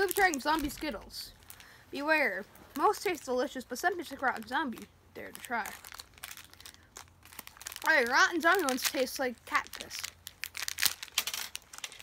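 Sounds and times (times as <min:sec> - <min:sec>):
plastic candy packet crinkling: 0:00.0 - 0:12.0.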